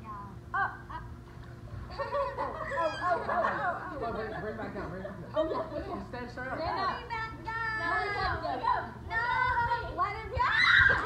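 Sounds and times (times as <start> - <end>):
people shouting and squealing: 10.3 - 11.0.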